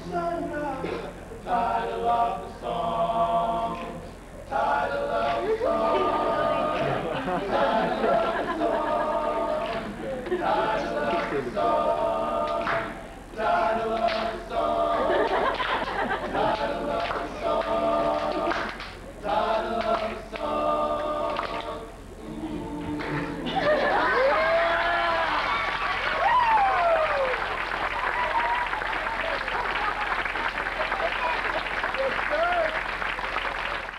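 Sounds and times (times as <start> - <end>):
male a cappella group singing: 0.0 - 24.8
audience applauding: 15.2 - 19.0, 23.0 - 33.9.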